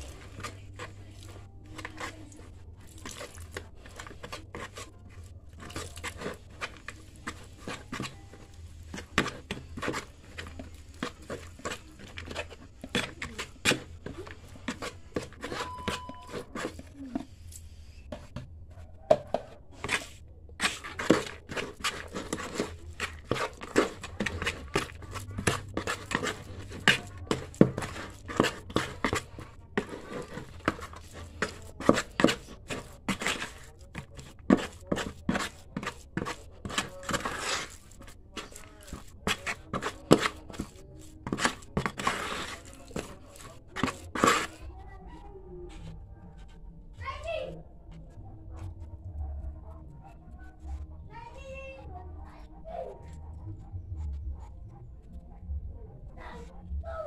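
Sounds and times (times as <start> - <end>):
trowel scraping plastic bucket: 0.0 - 17.3, 19.8 - 44.7.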